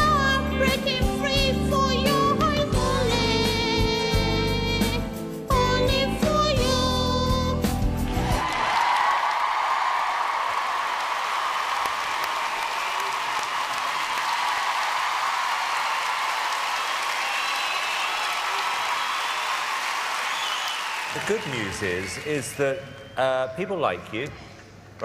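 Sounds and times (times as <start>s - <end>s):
audience applauding: 8.1s - 23.2s.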